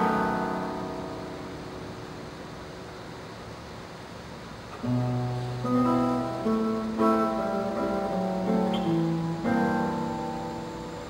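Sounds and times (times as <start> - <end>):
classical guitar: 0.0 - 3.6, 4.3 - 11.0
hall hiss: 0.0 - 11.0.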